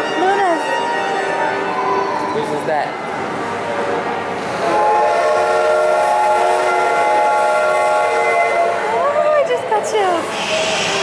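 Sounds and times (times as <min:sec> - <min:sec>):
steam locomotive whistle: 0:04.5 - 0:09.0, 0:10.2 - 0:11.0.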